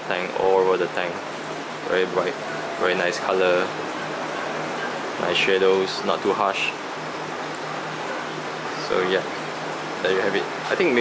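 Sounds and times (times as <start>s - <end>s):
water circulating in aquarium: 0.0s - 11.0s.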